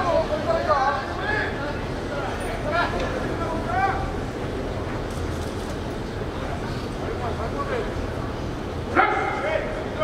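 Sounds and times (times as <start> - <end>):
steady background noise: 0.0 - 10.0.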